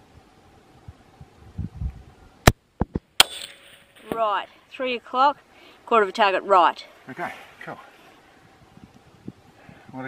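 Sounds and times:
rifle shot: 3.2 - 4.2
sharp crack with echo: 3.2 - 4.2.

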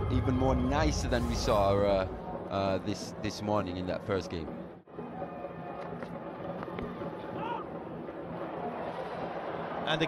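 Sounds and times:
crowd noise: 4.9 - 10.0.

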